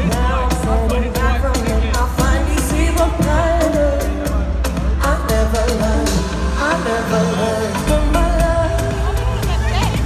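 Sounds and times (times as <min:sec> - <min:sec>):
woman singing: 0:00.0 - 0:10.0
beat with heavy bass: 0:07.8 - 0:10.0.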